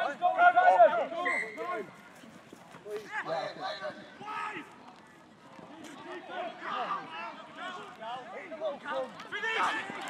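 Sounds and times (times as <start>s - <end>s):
men shouting and calling out: 0.0s - 2.0s, 6.0s - 10.0s.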